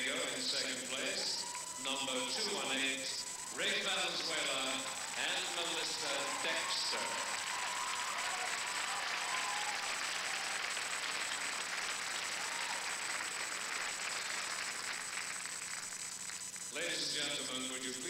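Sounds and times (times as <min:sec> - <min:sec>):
audience applauding: 0:03.2 - 0:16.6.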